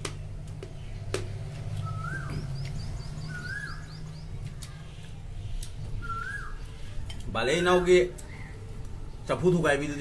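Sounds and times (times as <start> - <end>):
bird chirping: 0.6 - 7.0
bird whistled notes: 1.8 - 4.0, 6.0 - 6.7.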